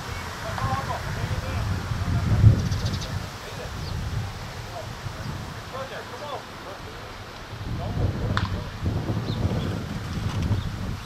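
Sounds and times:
faint distant voices: 0.0s - 9.9s
wind buffeting microphone: 0.0s - 11.0s.

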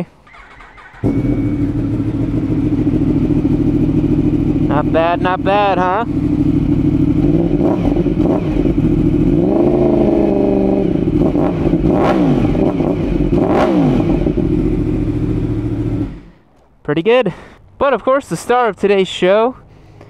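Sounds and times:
motorcycle engine idling: 0.2s - 11.9s, 14.0s - 16.5s
motorcycle throttle blips: 0.2s - 16.5s.

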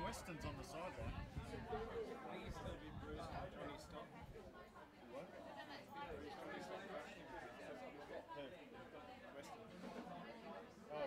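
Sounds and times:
faint chatter of voices: 0.0s - 11.0s.

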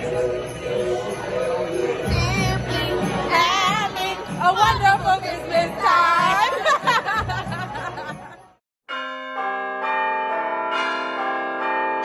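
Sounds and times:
tune played on bells: 0.0s - 5.3s, 7.2s - 12.0s
bar music: 0.0s - 12.0s.

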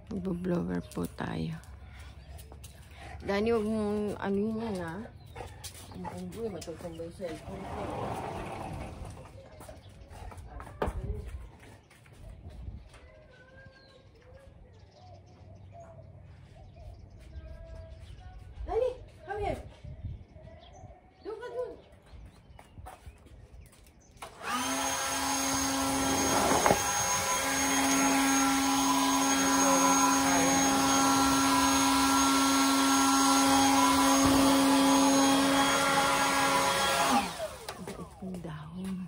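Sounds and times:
leaf blower whine: 24.2s - 38.4s.

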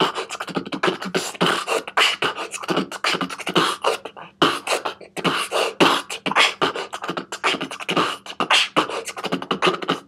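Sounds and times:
human beatboxing: 0.0s - 10.0s.

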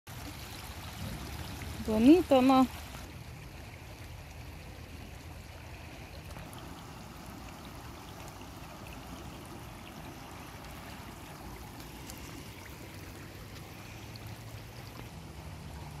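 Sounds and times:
stream running over stones: 0.1s - 16.0s.

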